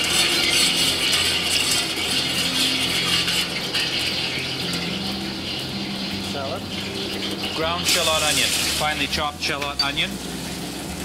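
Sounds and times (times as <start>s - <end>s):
gas burner roaring: 0.0s - 11.0s.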